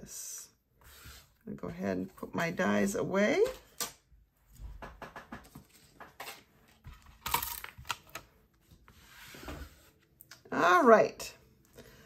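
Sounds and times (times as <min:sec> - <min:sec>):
scrape: 0:00.8 - 0:02.2, 0:08.9 - 0:10.0.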